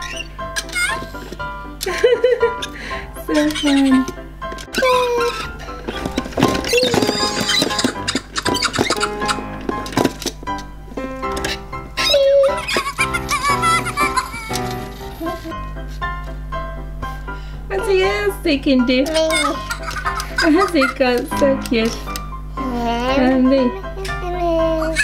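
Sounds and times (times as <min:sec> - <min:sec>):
electronic toys babbling and squeaking: 0:00.0 - 0:01.3, 0:02.6 - 0:04.1, 0:04.7 - 0:09.4, 0:11.4 - 0:15.5, 0:19.0 - 0:22.2, 0:24.0 - 0:25.0
music playing: 0:00.0 - 0:25.0.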